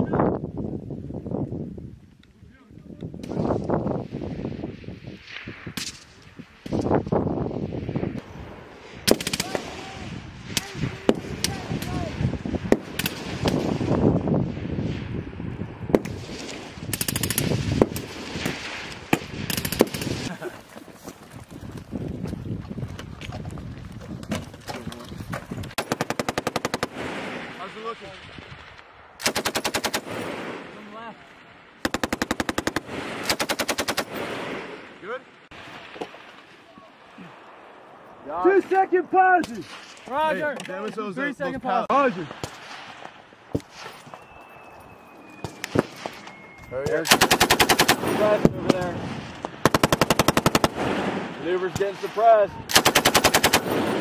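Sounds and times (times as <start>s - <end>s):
gunshots: 9.0s - 14.0s, 15.9s - 20.3s, 25.7s - 27.9s, 29.2s - 31.0s, 31.8s - 34.9s, 46.9s - 54.0s
machine-gun burst: 19.5s - 20.3s, 25.8s - 27.2s, 29.2s - 30.4s, 31.8s - 34.6s, 47.1s - 48.4s, 49.6s - 51.1s, 52.7s - 54.0s.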